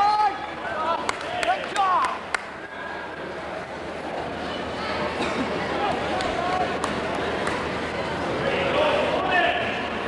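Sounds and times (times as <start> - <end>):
echoing crowd chatter: 0.0 - 10.0.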